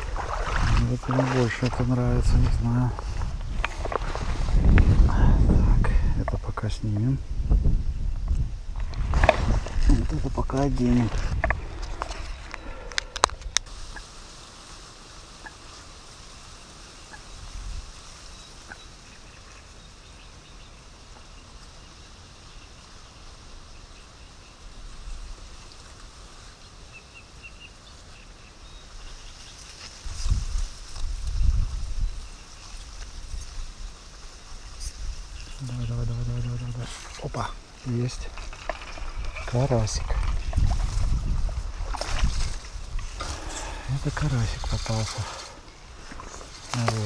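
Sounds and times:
low rumbling bumps: 0:00.0 - 0:13.7, 0:35.8 - 0:47.0.

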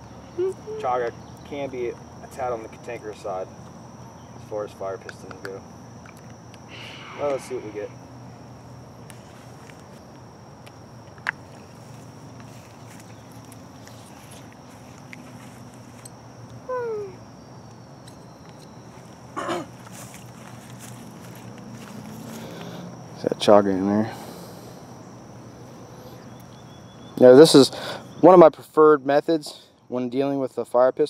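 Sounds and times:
high insect trill: 0:00.0 - 0:31.0.

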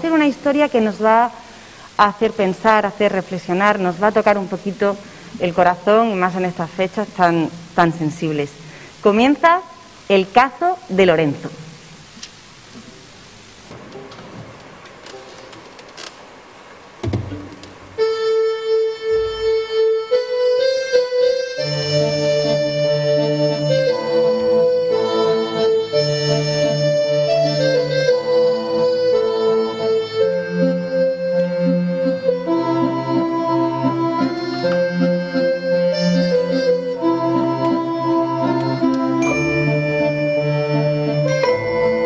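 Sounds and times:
keyboard chords: 0:17.1 - 0:42.0
strings playing sustained chords: 0:17.9 - 0:42.0.

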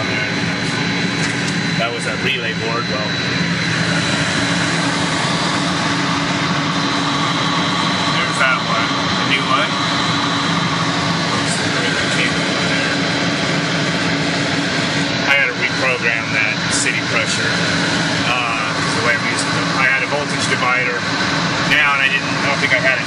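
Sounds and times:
low hum: 0:00.0 - 0:23.0
pump machinery drone: 0:00.0 - 0:23.0
thin high whine: 0:00.0 - 0:23.0.

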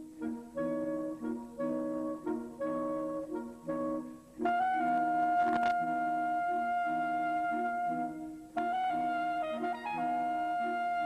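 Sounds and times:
saxophone quartet playing: 0:00.0 - 0:11.0.

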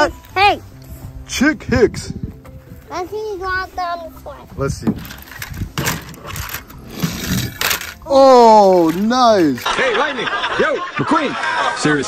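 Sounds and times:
toy car wheels rolling on plastic: 0:05.0 - 0:09.7.

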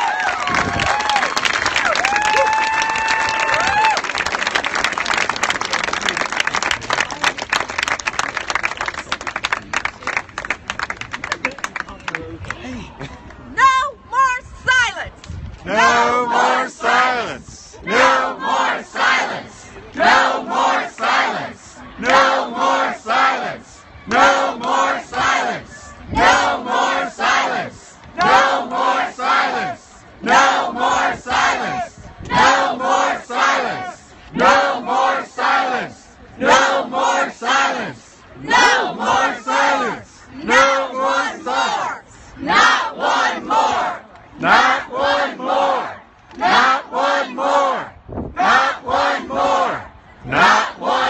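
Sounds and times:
woman shouting: 0:13.6 - 0:15.1
crowd chanting a slogan: 0:15.6 - 0:51.0.

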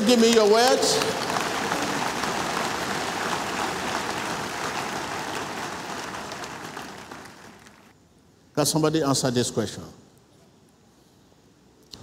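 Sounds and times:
congregation applauding: 0:00.0 - 0:07.9.

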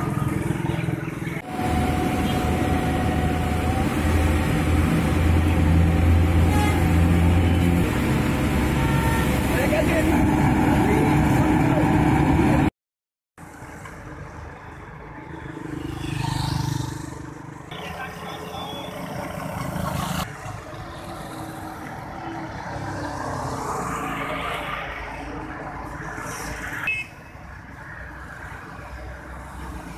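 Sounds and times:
vehicles passing on highway: 0:00.0 - 0:12.7, 0:13.4 - 0:29.9.

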